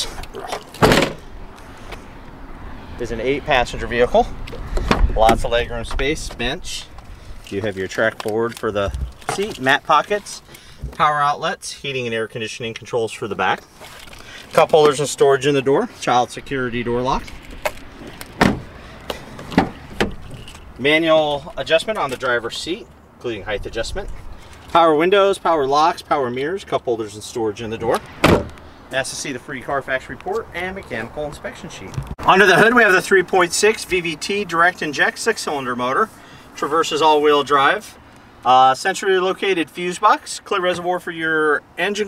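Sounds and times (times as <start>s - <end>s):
car door thump: 0.8s - 1.2s, 18.4s - 18.7s, 28.2s - 28.6s.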